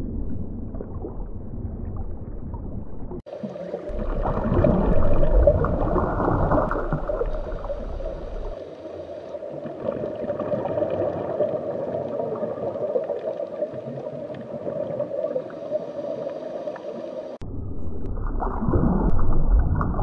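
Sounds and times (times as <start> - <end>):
muffled underwater rushing water: 0.0 - 20.0.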